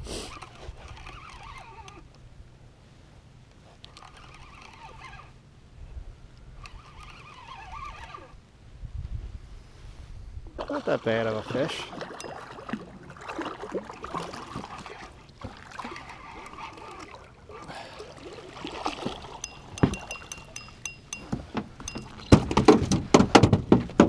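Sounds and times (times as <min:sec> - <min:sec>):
fishing reel cranking: 0:00.2 - 0:02.2, 0:03.7 - 0:05.4, 0:06.5 - 0:08.4, 0:14.5 - 0:17.7, 0:19.4 - 0:22.3
water splashing: 0:10.6 - 0:22.6
fish thrashing and knocks: 0:19.0 - 0:24.0.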